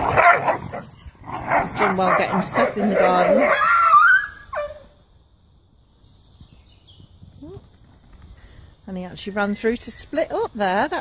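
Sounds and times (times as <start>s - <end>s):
dog yelping: 1.5s - 4.9s.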